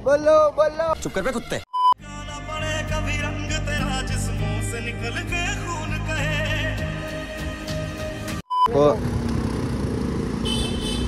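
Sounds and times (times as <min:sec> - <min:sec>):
vehicle engine and road rumble: 0:08.8 - 0:11.0.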